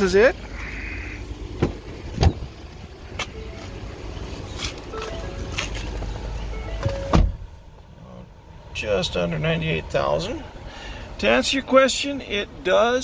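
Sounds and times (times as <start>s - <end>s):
car door latch click: 6.8s - 7.4s.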